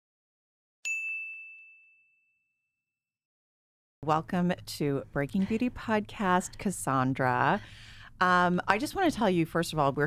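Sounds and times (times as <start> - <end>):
bright bell chime: 0.9 - 2.5.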